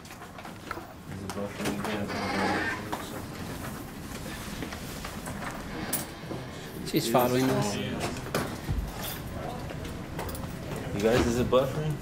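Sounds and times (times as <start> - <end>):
murmur of indistinct voices: 1.6 - 12.0.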